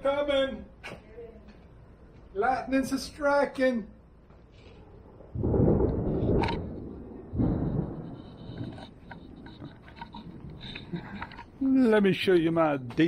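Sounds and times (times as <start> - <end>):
thunder rumbling: 5.1 - 11.2.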